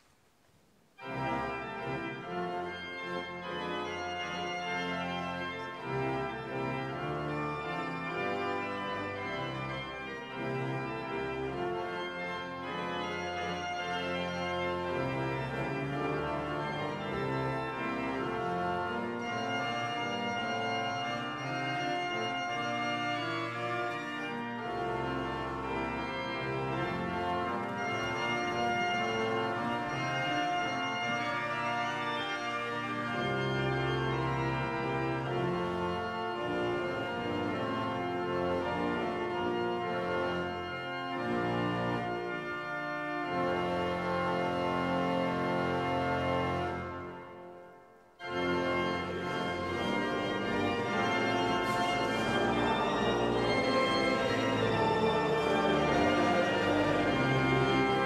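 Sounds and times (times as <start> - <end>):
church organ chords: 1.0 - 58.0.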